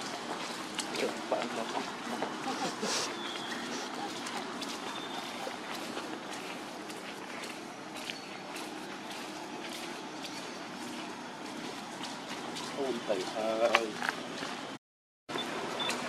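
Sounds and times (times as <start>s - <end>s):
footsteps on dirt path: 0.0s - 14.8s
outdoor background noise: 0.0s - 16.0s.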